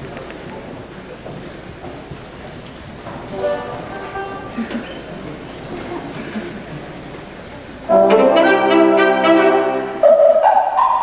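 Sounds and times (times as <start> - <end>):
murmur of a hall: 0.0 - 11.0
band instrument holding a note: 7.9 - 11.0.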